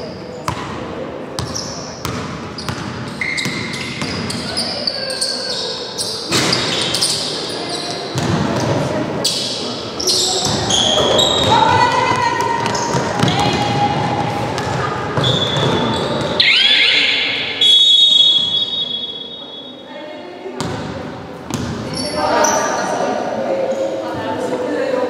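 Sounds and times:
long high-pitched tone: 16.4 - 19.8.

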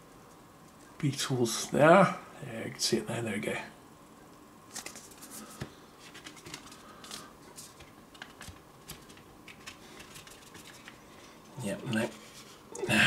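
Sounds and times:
cardboard sleeve scraping and clicking: 4.7 - 11.0.

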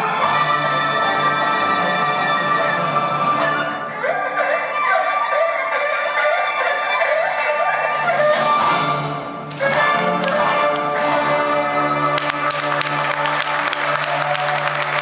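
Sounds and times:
string ensemble music: 0.0 - 15.0.

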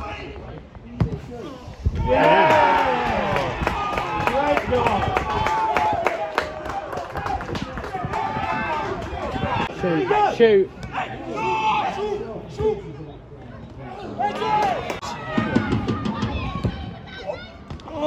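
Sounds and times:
voices shouting and cheering: 1.5 - 13.1, 13.7 - 18.0.

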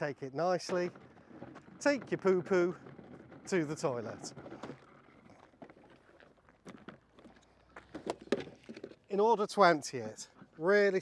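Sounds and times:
footsteps on gravel: 0.3 - 9.3.

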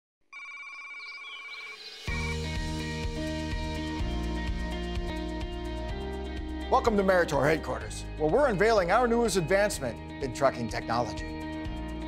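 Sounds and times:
electronic ringtone-like tone: 0.3 - 2.3
faint wavering chirps: 0.4 - 2.4.

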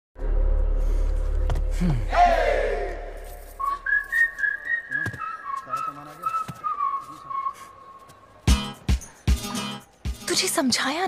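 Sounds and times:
person whistling a tune: 3.6 - 8.0.

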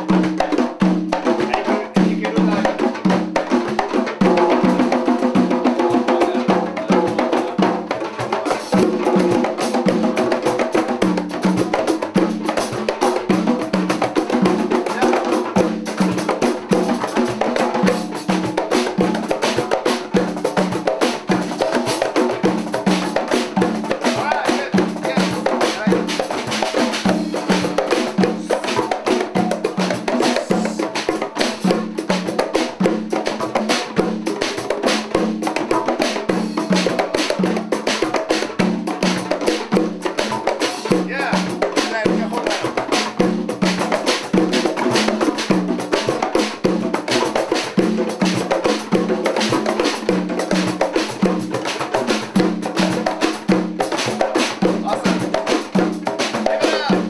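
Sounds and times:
hand drums and drum kit: 0.0 - 57.0.

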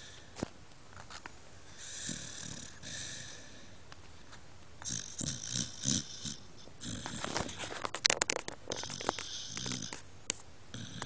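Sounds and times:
dog snoring: 1.7 - 3.7, 4.8 - 7.7, 8.7 - 10.0, 10.7 - 11.0.

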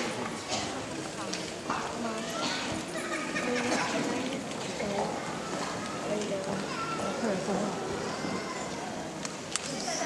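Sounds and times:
murmur of audience voices: 0.0 - 10.0.

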